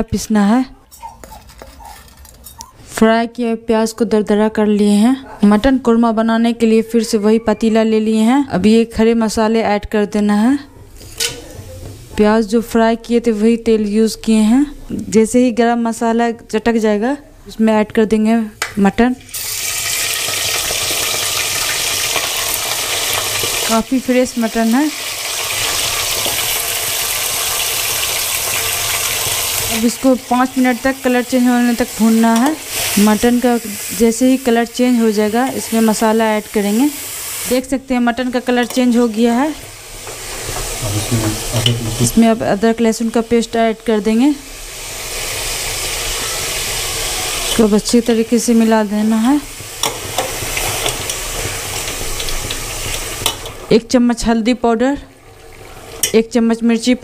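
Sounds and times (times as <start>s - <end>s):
spatula scraping pot: 0.9s - 2.7s
meat sizzling in hot oil: 19.3s - 54.2s.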